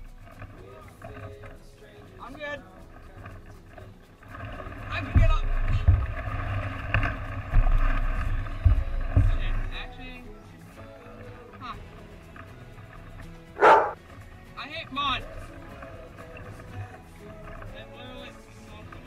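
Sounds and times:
heavy thumps against canoe hull: 7.0 - 9.7
strained vocal noises: 8.0 - 19.0.

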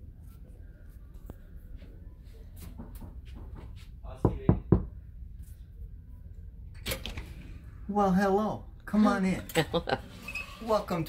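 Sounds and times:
knocks on wooden door: 2.8 - 4.9.

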